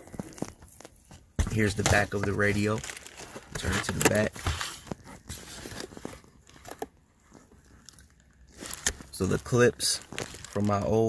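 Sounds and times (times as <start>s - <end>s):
packaging crinkling and rustling: 0.0s - 11.0s.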